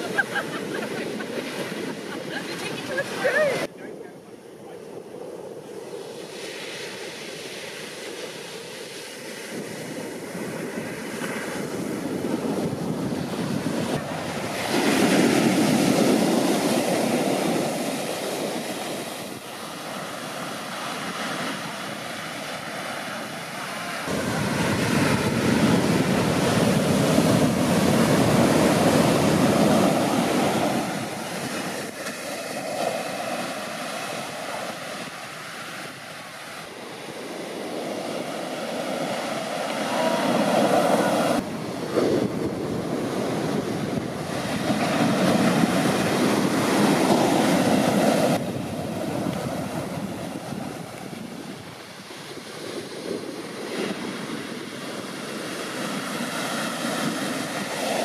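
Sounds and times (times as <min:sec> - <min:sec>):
surf breaking on beach: 0:00.0 - 0:58.0.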